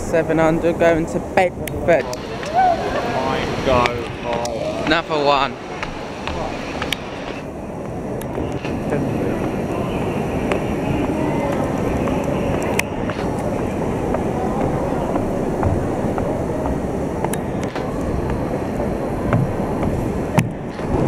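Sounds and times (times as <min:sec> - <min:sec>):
low rumble of standing trains: 0:00.0 - 0:21.0
people's voices: 0:00.0 - 0:21.0.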